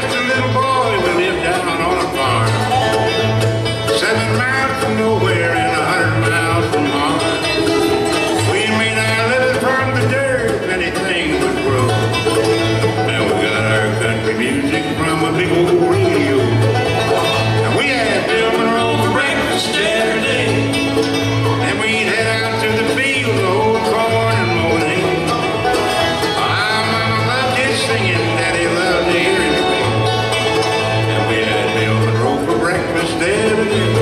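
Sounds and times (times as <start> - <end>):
bluegrass band playing: 0.0 - 34.0.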